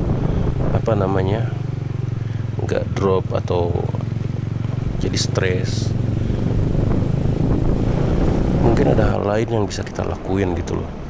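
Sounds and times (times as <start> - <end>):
scooter engine running: 0.0 - 8.7.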